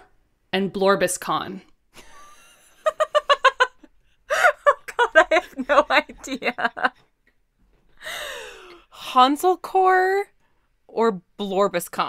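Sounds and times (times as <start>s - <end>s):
woman sighing: 8.0s - 8.9s.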